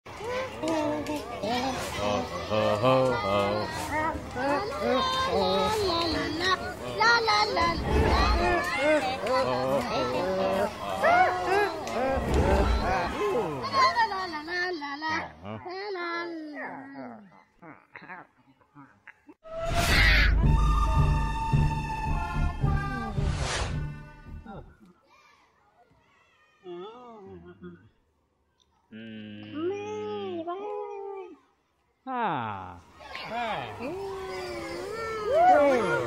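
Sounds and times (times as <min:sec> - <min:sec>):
high child-like voices calling: 0:00.2 - 0:17.3, 0:33.0 - 0:36.0
long descending vocal call: 0:33.8 - 0:36.0.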